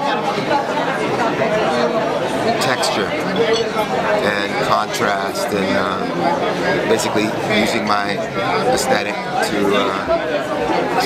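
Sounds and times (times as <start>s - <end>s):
murmur of overlapping voices: 0.0s - 11.0s.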